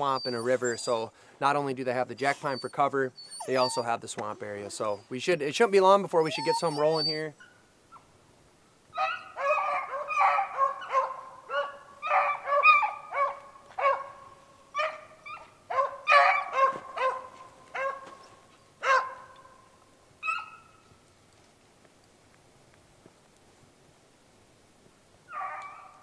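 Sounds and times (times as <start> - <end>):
hounds baying: 0.0 - 1.1, 2.2 - 8.1, 9.0 - 20.8, 25.3 - 26.0.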